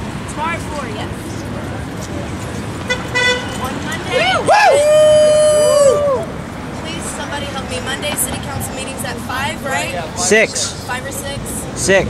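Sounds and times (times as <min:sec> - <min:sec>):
murmur of crowd voices: 0:00.0 - 0:12.0
street traffic noise: 0:00.0 - 0:12.0
vehicle horn toot: 0:02.9 - 0:03.7.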